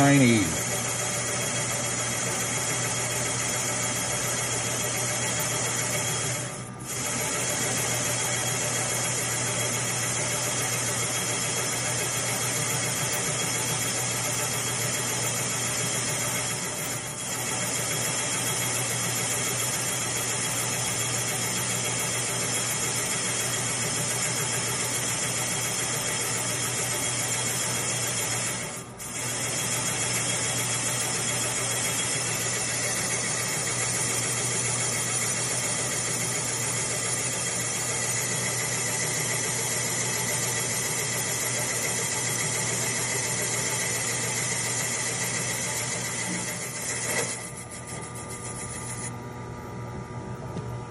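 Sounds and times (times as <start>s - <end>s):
machine spindle whirring: 0.0s - 49.2s.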